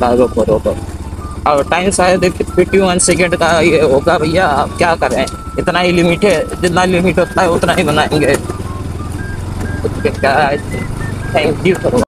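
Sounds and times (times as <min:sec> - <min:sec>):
faint high beeps melody: 0:00.0 - 0:12.0
motor scooter rumbling: 0:00.0 - 0:12.0.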